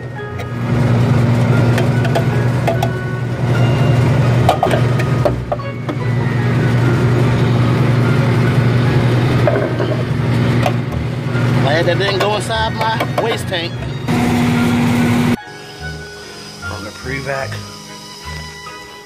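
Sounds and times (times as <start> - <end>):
low motor hum: 0.0 - 19.0.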